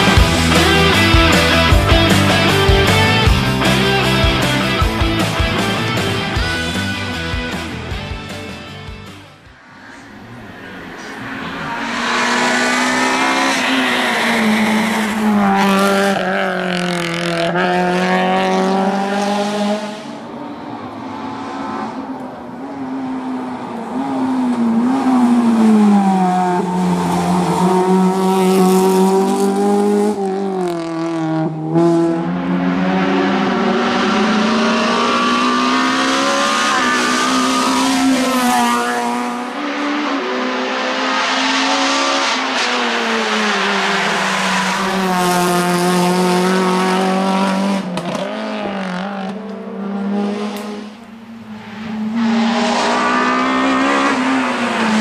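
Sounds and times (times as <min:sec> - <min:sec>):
race car engine revving: 0:09.4 - 0:55.0.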